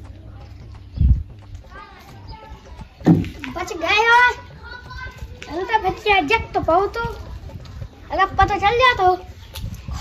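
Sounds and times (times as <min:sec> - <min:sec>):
dull low thump: 0:00.1 - 0:03.8.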